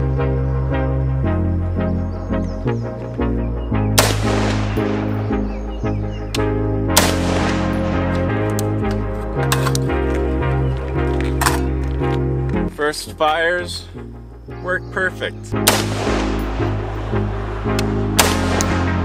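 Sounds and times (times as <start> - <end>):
background music: 0.0 - 19.0
rifle shots: 4.0 - 5.1, 6.9 - 8.1, 15.6 - 16.7, 18.1 - 19.0.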